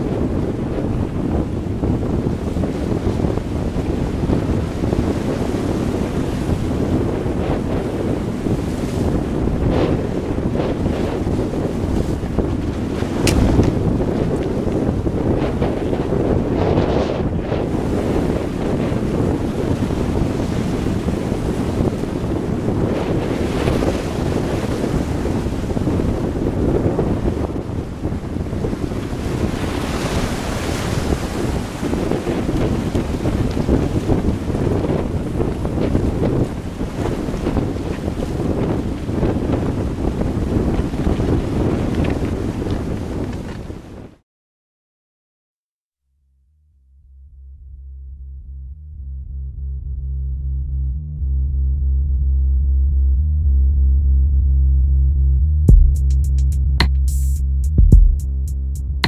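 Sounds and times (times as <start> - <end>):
wind buffeting microphone: 0.0 - 44.2
surf washing against rocks: 2.1 - 16.9, 17.6 - 26.0, 28.2 - 43.5
sharp click: 13.2 - 13.7.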